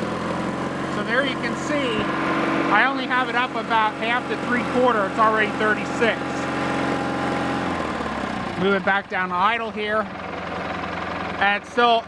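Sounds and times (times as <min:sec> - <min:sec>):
garden tractor engine running: 0:00.0 - 0:12.0.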